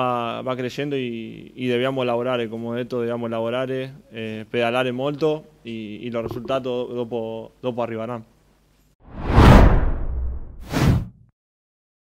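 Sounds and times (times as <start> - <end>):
deep whoosh: 9.1 - 11.2.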